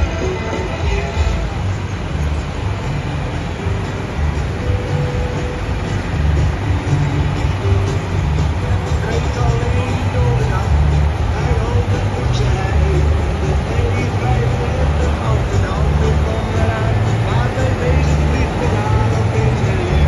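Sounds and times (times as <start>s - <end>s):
tractor diesel engine under load: 0.0s - 20.0s.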